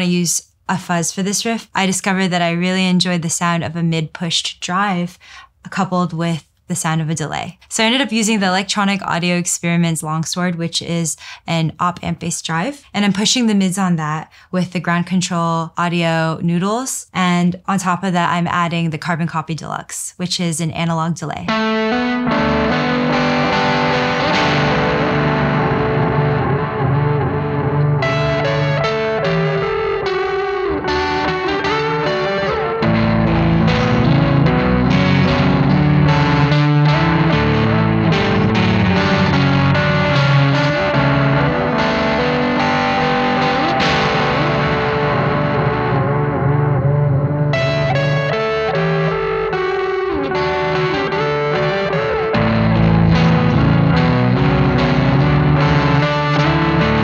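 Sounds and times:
overdriven electric guitar riff: 21.5 - 57.0.

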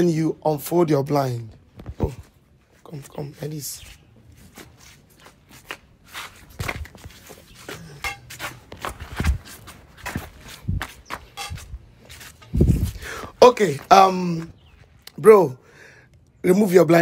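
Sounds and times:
footsteps shuffling on stone tiles: 1.4 - 15.0.

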